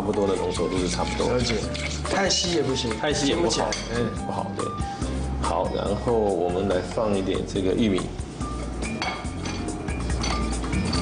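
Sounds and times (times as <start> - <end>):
glass bowls clinking: 0.0 - 4.2, 8.5 - 11.0
background music: 0.0 - 11.0
corn kernels scraped into bowl: 0.3 - 2.7.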